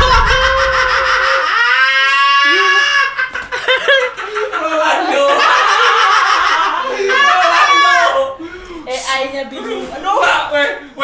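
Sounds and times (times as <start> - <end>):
laughter: 0.0 - 8.1.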